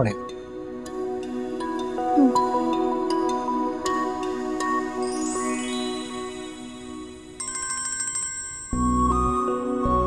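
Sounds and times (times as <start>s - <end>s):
melodic phone ring tune: 7.4s - 9.0s.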